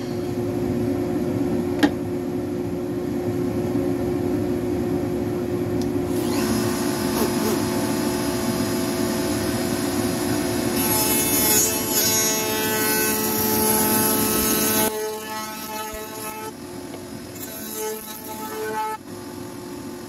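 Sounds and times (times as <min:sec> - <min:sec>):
router bit cutting wood: 0:06.1 - 0:16.6, 0:17.3 - 0:19.0
router running: 0:06.1 - 0:19.0.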